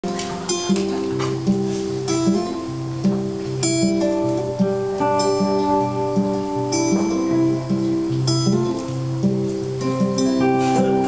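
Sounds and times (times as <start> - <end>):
acoustic and electric guitar playing: 0.0 - 11.0.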